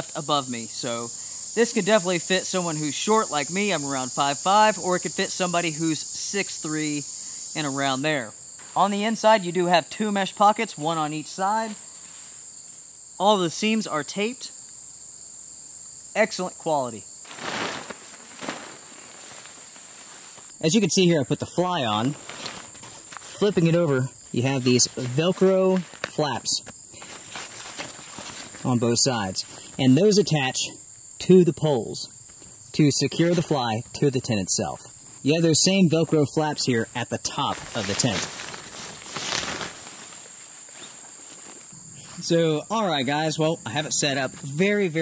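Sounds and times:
crickets and insects chirring: 0.0 - 45.0
tent fly rustle: 0.1 - 13.8, 15.8 - 29.9, 32.2 - 33.6, 36.6 - 42.4.

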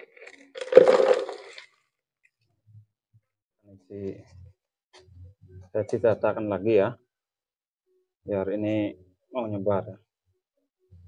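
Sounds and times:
potting soil pouring: 0.0 - 1.7.

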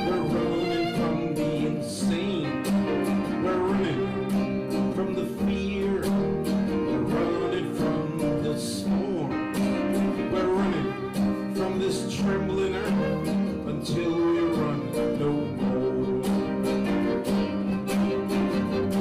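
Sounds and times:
acoustic guitar: 0.0 - 19.0
violin melody: 0.0 - 19.0.

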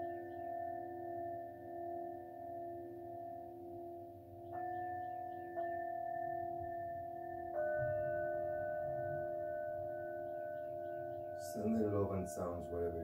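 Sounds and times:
low bowl tone sustaining: 0.0 - 13.0
singing bowls struck: 0.0 - 13.0.

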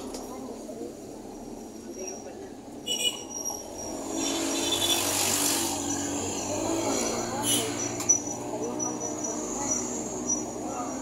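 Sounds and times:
traffic passing alongside: 0.0 - 11.0
vehicle engine and road noise: 0.0 - 11.0.

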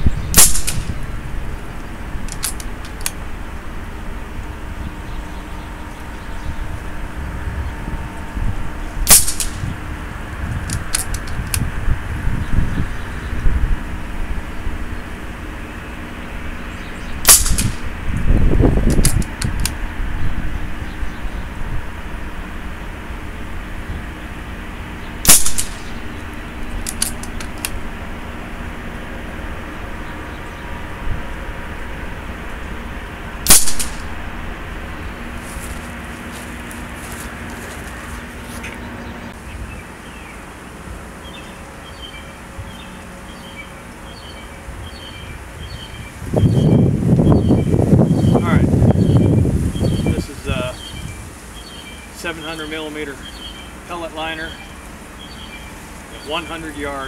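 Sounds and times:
wind noise: 0.0 - 37.2, 44.6 - 51.7
air rifle shots: 0.3 - 1.1, 9.0 - 9.8, 17.2 - 18.0, 25.2 - 27.8, 33.4 - 34.3
rifle action clicking: 2.3 - 3.2, 26.8 - 27.8.

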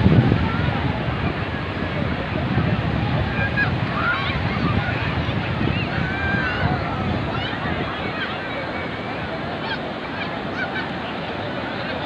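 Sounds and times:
surf: 0.0 - 12.0
wind on microphone: 0.0 - 12.0.

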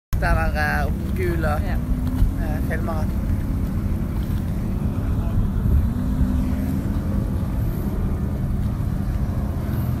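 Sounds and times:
powerboat engines droning: 0.2 - 10.0.

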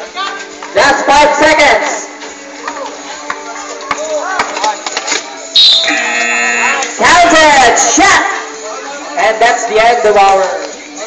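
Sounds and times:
background music: 0.0 - 11.0
crowd noise: 0.0 - 11.0
loud steady buzzer signal: 5.6 - 6.8.

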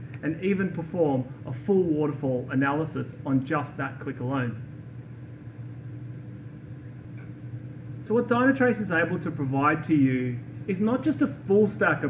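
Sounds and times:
steady low hum with hiss: 0.0 - 12.0.

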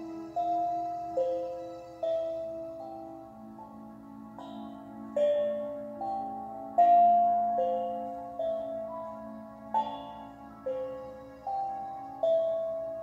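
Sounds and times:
chime-like mallet notes: 0.0 - 13.0.

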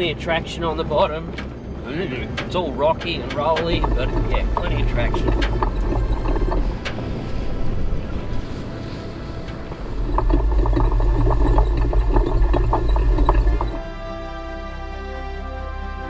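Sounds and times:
water splashing around wheels: 0.0 - 13.8
background music: 0.0 - 16.0
low rumble: 1.1 - 14.4
crackles: 2.4 - 13.8.

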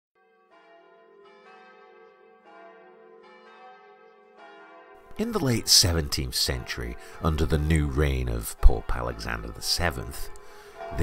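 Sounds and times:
faint church bells ringing: 0.2 - 11.0.

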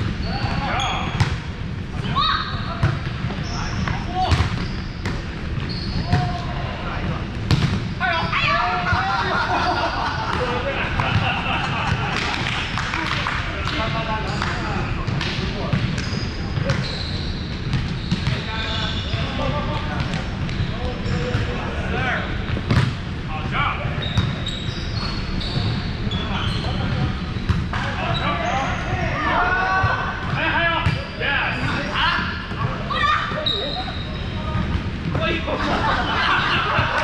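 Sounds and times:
sneakers squeaking: 0.0 - 12.2, 13.0 - 23.2, 23.8 - 37.0.

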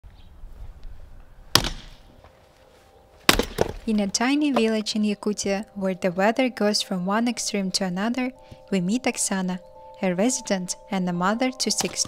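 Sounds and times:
hatchet chopping log: 1.6 - 2.0, 3.3 - 3.9.

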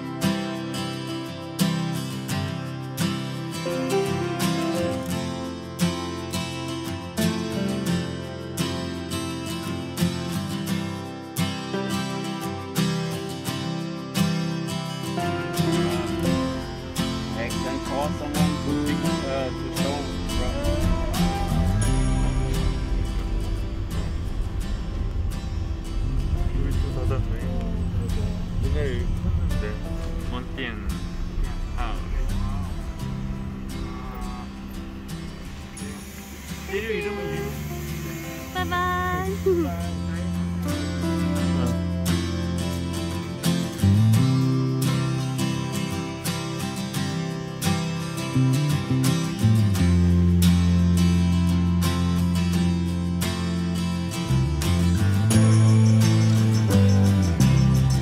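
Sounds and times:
acoustic guitar strumming: 0.0 - 58.0
voices talking: 15.2 - 23.0, 26.0 - 42.0
van engine and road rumble: 16.4 - 36.2.

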